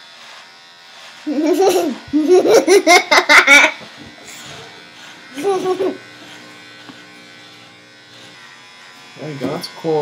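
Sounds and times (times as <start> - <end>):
electric beard trimmer buzzing: 0.0 - 10.0.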